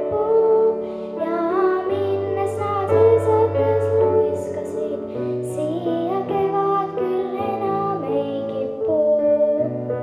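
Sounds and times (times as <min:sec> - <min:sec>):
girl singing: 0:00.0 - 0:10.0.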